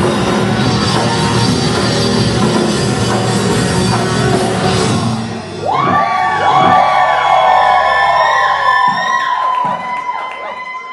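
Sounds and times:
live rock band: 0.0s - 10.0s
crowd whooping and yelling: 5.5s - 10.9s.

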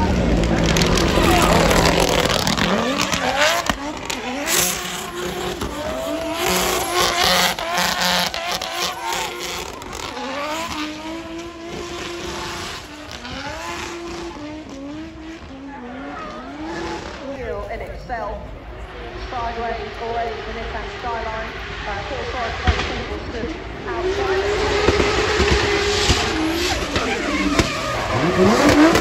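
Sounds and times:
car engine revving: 0.0s - 29.0s.

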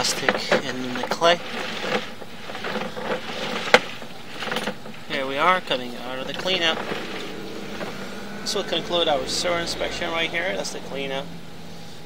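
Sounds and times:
cable rubbing while reeled in: 0.0s - 12.0s.

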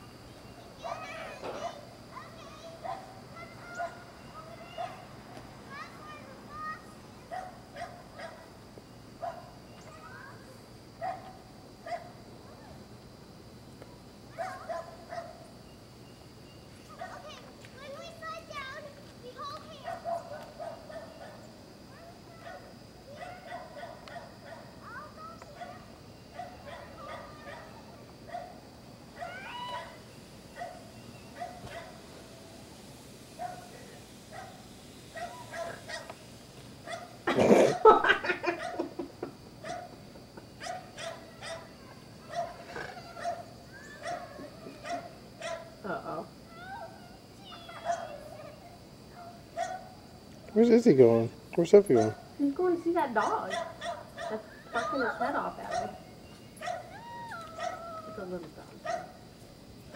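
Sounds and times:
children's voices: 0.6s - 7.6s, 9.8s - 10.6s, 16.9s - 21.2s, 21.9s - 26.0s, 26.6s - 28.2s, 41.0s - 49.6s, 53.2s - 56.1s
small dog barking and yipping: 2.5s - 5.1s, 7.3s - 8.5s, 11.0s - 12.7s, 14.3s - 15.4s, 16.9s - 17.4s, 19.7s - 21.4s, 22.0s - 32.0s, 33.4s - 36.2s, 36.8s - 38.9s, 39.6s - 40.0s, 40.6s - 45.8s, 46.6s - 50.0s, 51.9s - 52.3s, 53.1s - 56.0s, 56.6s - 58.2s, 58.8s - 59.2s.

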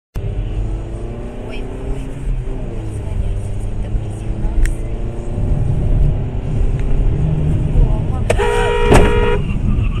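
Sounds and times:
car engine and road rumble: 0.1s - 10.0s
voices: 1.2s - 5.4s
car horn: 8.3s - 9.8s.

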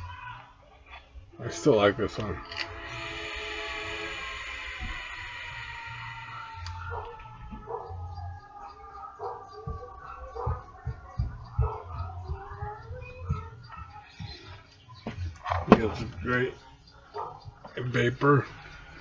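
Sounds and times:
short wavering calls: 0.0s - 19.0s
long falling howl: 1.3s - 14.4s.

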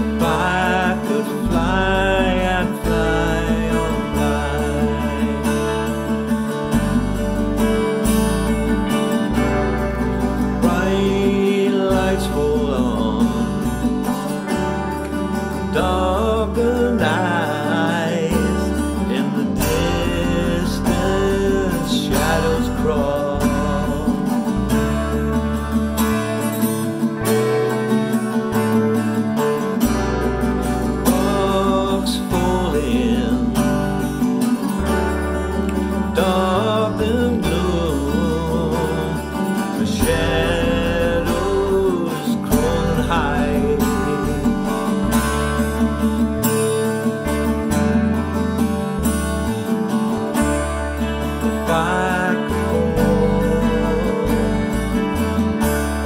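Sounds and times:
man singing: 0.0s - 27.0s, 30.8s - 46.9s, 50.4s - 56.0s
acoustic guitar strummed: 0.0s - 56.0s.

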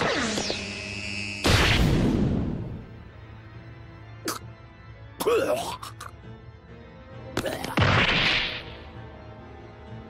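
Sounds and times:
quiet background music: 0.0s - 10.0s.

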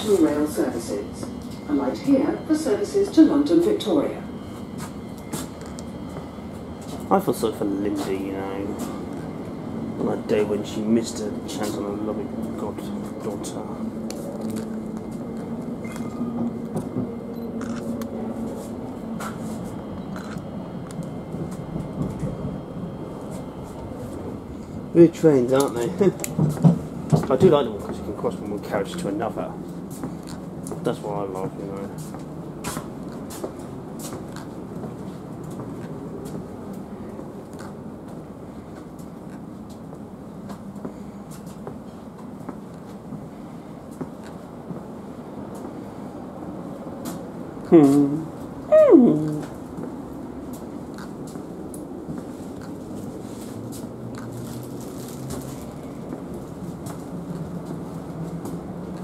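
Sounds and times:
train carriage rumble: 0.0s - 59.0s.

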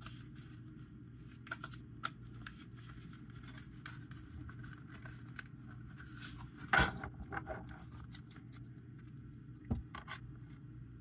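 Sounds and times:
cards rustling and shuffling: 0.0s - 6.7s, 7.6s - 9.3s
low steady hum: 0.0s - 11.0s.

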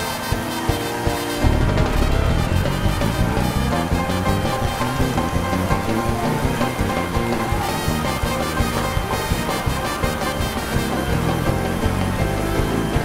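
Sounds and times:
congregation clapping: 0.0s - 13.0s
upbeat gospel music: 0.0s - 13.0s.

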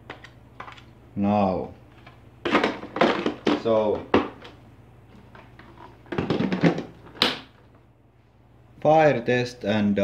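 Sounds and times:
hollow plastic knocks and clatter: 2.4s - 4.6s, 5.3s - 7.6s.

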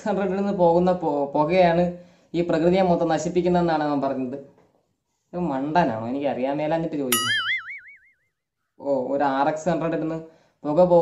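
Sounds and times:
cartoon boing sound effect: 7.1s - 8.2s.

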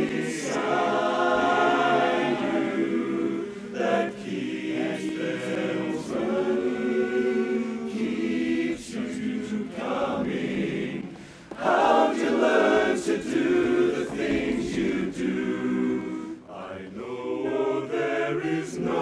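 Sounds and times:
men's chorus singing a cappella: 0.0s - 19.0s.

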